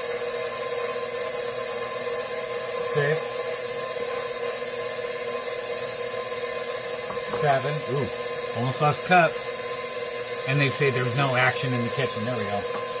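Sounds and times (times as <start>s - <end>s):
stand mixer motor hum: 0.0s - 13.0s.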